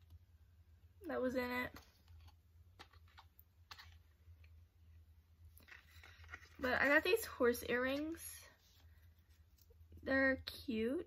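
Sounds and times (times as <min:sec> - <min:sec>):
low steady hum: 0:00.0 - 0:11.0
small items clicking and rustling: 0:01.7 - 0:04.1, 0:05.6 - 0:07.2.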